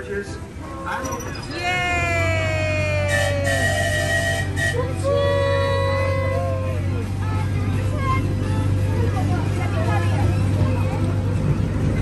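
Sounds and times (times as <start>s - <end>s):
miniature train engine drone: 1.1s - 12.0s.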